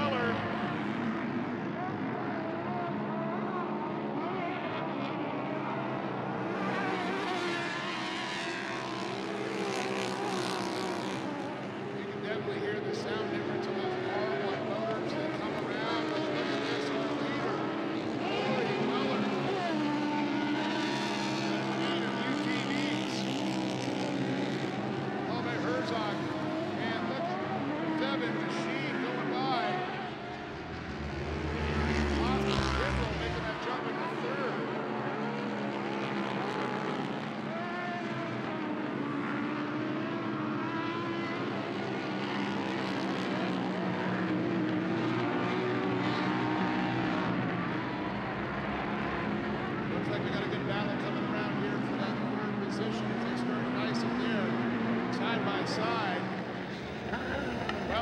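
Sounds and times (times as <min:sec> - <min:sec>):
race engines revving: 0:00.0 - 0:58.0.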